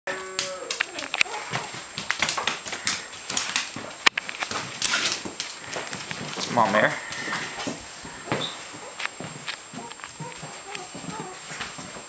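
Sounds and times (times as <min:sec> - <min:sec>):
puppy whining: 0:00.1 - 0:01.9, 0:09.7 - 0:11.9
dog claws clicking on floor: 0:00.1 - 0:12.0.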